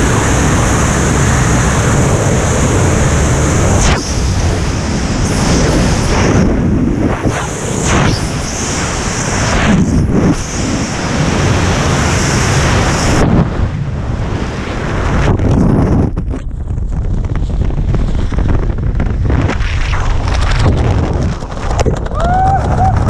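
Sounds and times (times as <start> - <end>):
gusty wind buffeting: 0.0 - 23.0
wind rushing over microphone: 0.0 - 23.0.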